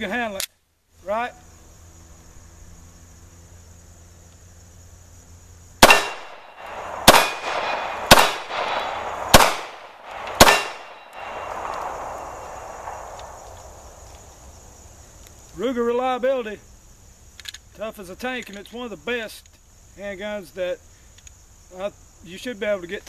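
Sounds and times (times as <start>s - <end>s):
pistol shots with rolling echo: 5.8s - 13.8s.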